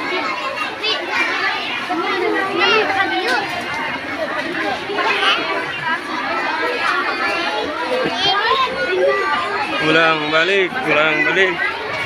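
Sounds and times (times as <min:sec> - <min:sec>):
crowd of women and children talking: 0:00.0 - 0:12.0
high children's voices: 0:00.0 - 0:12.0.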